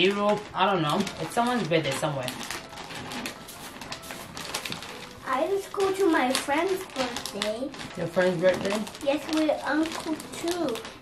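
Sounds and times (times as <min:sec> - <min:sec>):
wrapping paper rustling and crinkling: 0:00.0 - 0:11.0.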